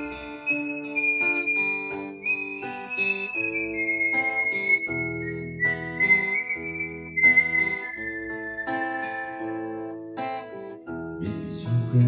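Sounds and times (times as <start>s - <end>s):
whistled melody: 0.0s - 10.4s
fingerpicked acoustic guitar: 0.0s - 12.0s.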